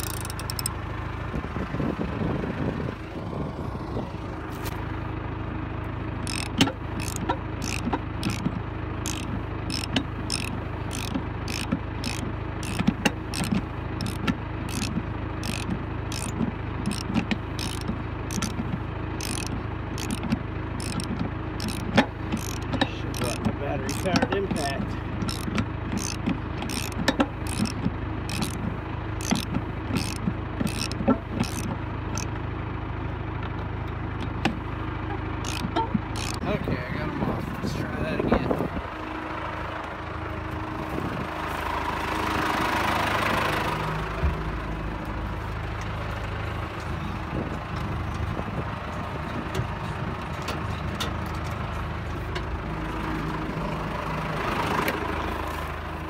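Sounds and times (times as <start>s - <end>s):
metallic wrench clicks: 0.0s - 0.7s, 6.2s - 18.6s, 19.2s - 24.2s, 25.2s - 28.6s, 29.2s - 32.3s, 35.4s - 36.4s
engine idling: 0.0s - 56.0s.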